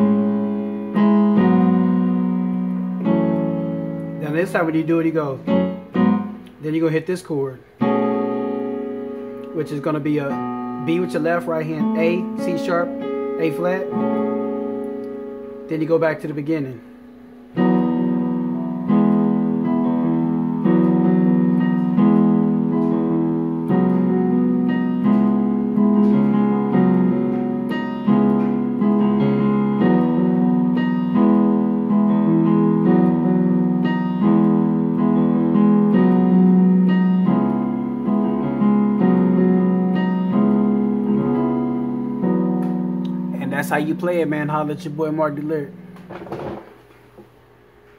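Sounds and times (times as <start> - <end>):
piano chords ringing: 0.0 - 47.9.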